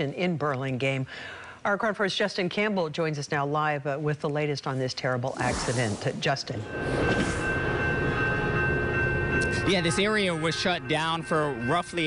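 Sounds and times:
thin high tone: 0:06.5 - 0:12.0
train rumbling on rails: 0:06.6 - 0:12.0.

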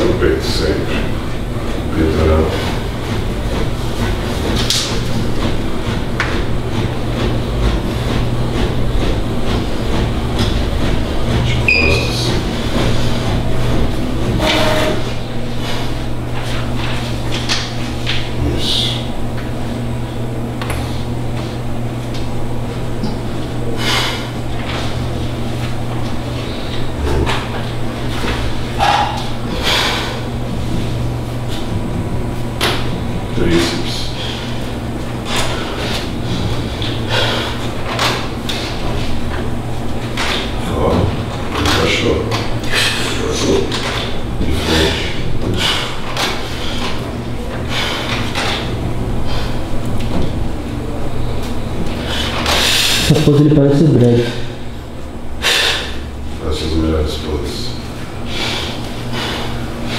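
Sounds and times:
steady low hum: 0:00.0 - 0:59.9
indistinct voices: 0:26.6 - 0:27.8.

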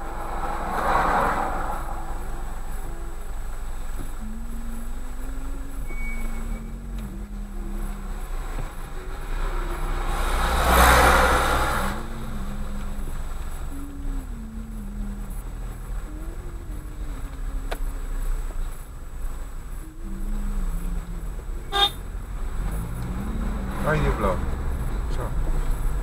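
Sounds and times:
car engine idling: 0:00.0 - 0:26.0
rushing noise: 0:00.0 - 0:26.0.

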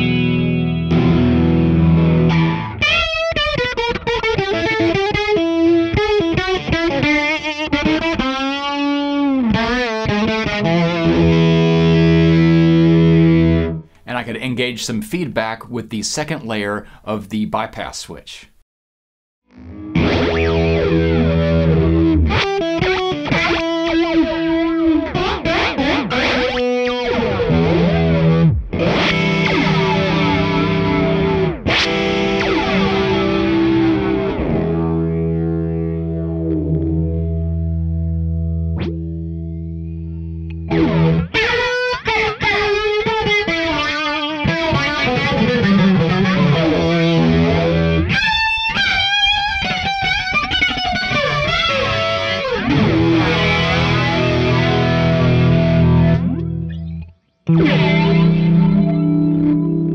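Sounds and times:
electric guitar with flanger: 0:00.0 - 0:14.0, 0:19.5 - 0:59.9.

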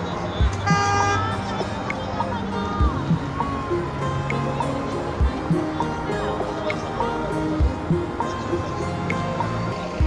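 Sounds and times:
background music: 0:00.0 - 0:10.0
street traffic: 0:00.0 - 0:10.0
car horn honk: 0:00.6 - 0:01.4.

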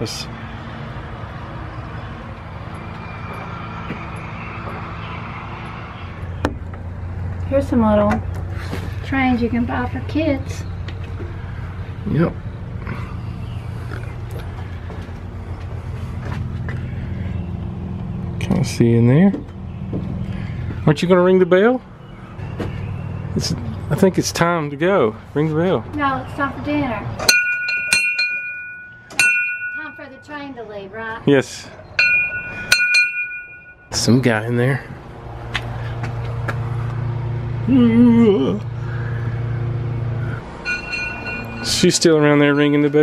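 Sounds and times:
small bell ringing: 0:27.3 - 0:30.3, 0:32.0 - 0:34.0, 0:40.6 - 0:43.0.

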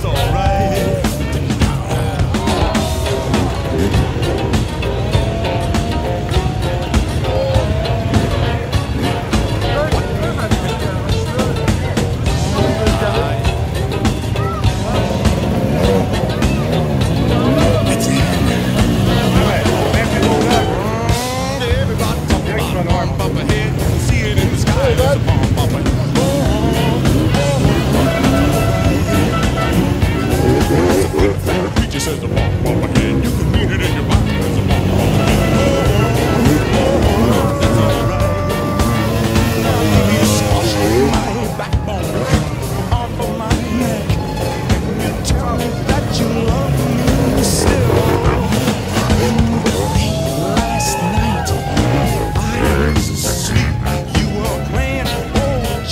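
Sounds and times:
background music with beat: 0:00.0 - 0:55.9
dirt bike engine revving: 0:00.0 - 0:55.9
dirt bike engines running: 0:00.0 - 0:55.9.

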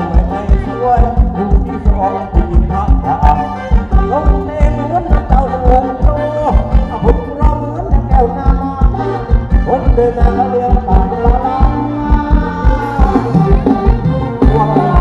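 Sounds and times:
heavy drum beat: 0:00.0 - 0:15.0
live dance band music: 0:00.0 - 0:15.0.

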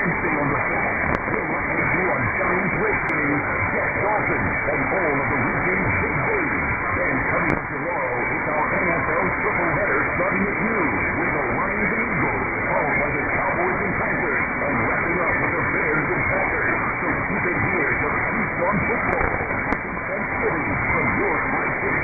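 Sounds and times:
muffled talk radio speech: 0:00.0 - 0:22.0
radio hiss and static: 0:00.0 - 0:22.0.

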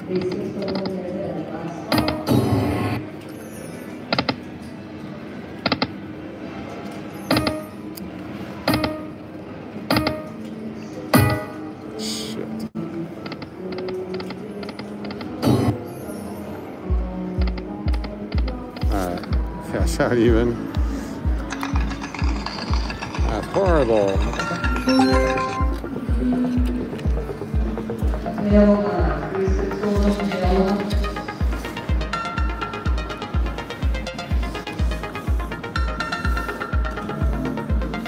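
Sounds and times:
casino background music: 0:00.0 - 0:38.0
slot machine reels clicking: 0:21.5 - 0:25.9
short electronic chimes: 0:24.6 - 0:25.8.

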